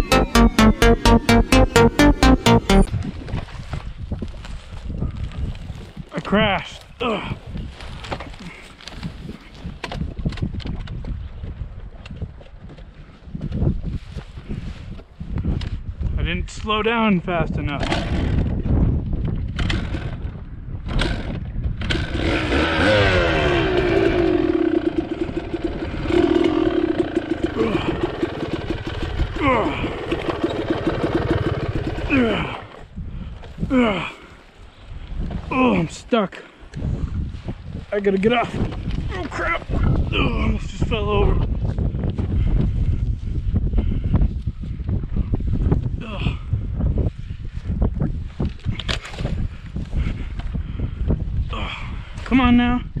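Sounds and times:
wind buffeting microphone: 3.1 - 6.1, 9.1 - 16.5, 17.4 - 22.0, 32.8 - 33.7, 36.8 - 53.0
dirt bike engine revving: 21.9 - 29.4.

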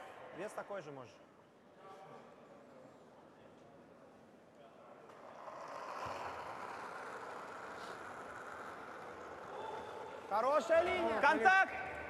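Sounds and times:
curling stone sliding over ice: 5.2 - 10.0.

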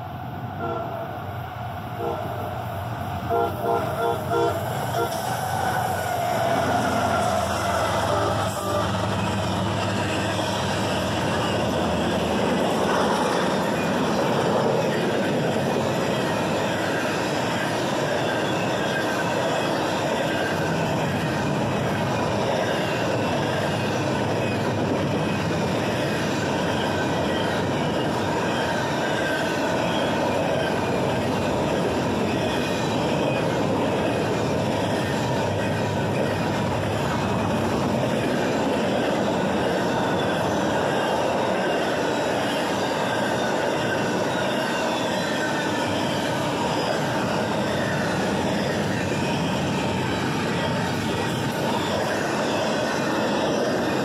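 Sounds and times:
train wheels rumbling on rails: 0.0 - 54.0
train horn blasts: 0.6 - 1.0, 2.0 - 2.3, 3.3 - 5.2, 8.0 - 9.0.

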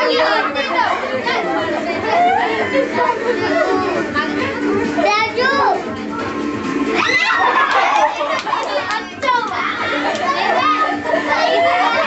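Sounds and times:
children shouting and chattering: 0.0 - 12.0.

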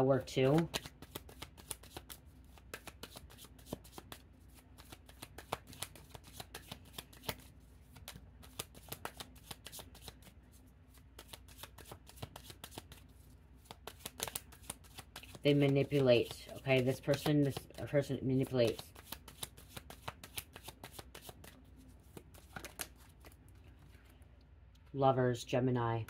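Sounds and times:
cards being shuffled: 0.3 - 24.2.

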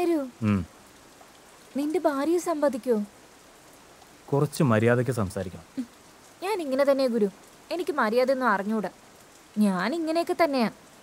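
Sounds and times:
faint hiss: 0.0 - 11.0
higher voice speaking: 0.4 - 0.7
man speaking in low voice: 0.4 - 0.7, 4.3 - 5.6.

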